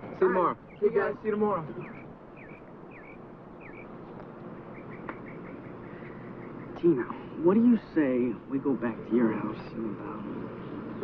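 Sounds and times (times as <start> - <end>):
faint outdoor background noise: 0.0 - 11.0
small bird chirping: 0.5 - 7.1.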